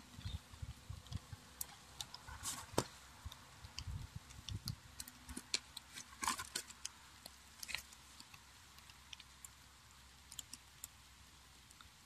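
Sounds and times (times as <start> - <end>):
firewood crackling: 0.0 - 12.0.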